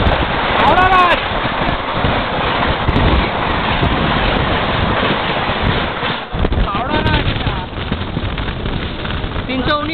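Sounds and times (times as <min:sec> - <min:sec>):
train rushing past on rails: 0:00.0 - 0:09.9
wind buffeting microphone: 0:00.0 - 0:09.9.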